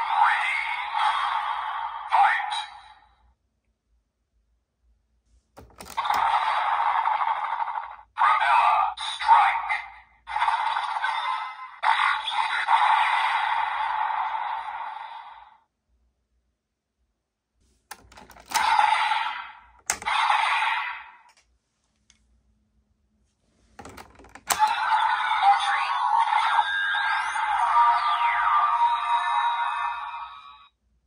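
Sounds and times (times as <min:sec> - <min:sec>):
toy voice call: 0:00.0 - 0:02.9, 0:08.2 - 0:13.9, 0:18.4 - 0:21.2, 0:24.4 - 0:30.7
plastic clicks: 0:05.6 - 0:06.2, 0:17.9 - 0:18.8, 0:19.8 - 0:20.1, 0:23.8 - 0:24.7.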